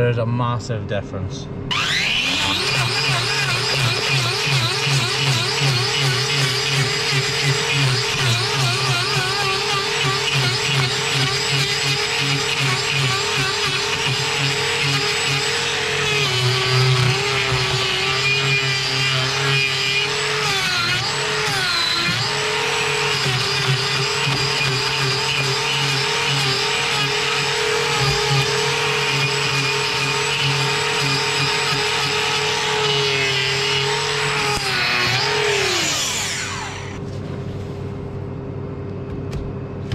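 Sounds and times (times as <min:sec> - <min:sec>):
angle grinder cutting hoof: 0:01.7 - 0:37.0.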